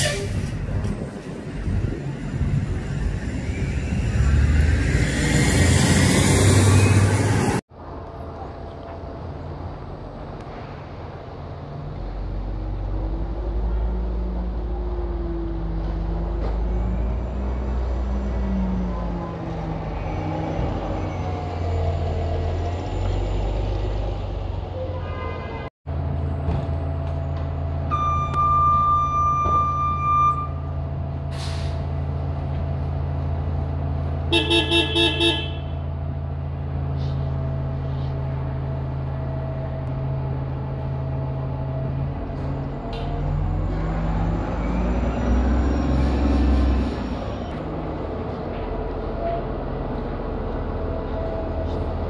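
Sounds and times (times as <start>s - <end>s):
bus drone with whine: 0.0s - 25.1s, 25.9s - 34.3s, 35.6s - 52.0s
street traffic: 0.0s - 52.0s
vehicle rushing past: 1.9s - 7.6s.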